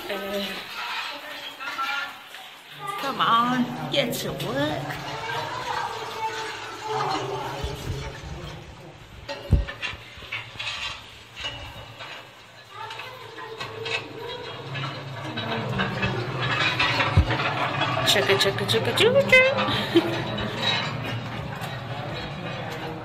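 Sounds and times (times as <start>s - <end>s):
indistinct voices: 0.0s - 23.0s.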